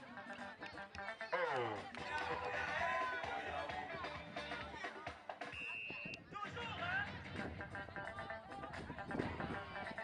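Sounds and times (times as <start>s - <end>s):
music: 0.0s - 10.0s
whistle blast: 5.4s - 6.2s.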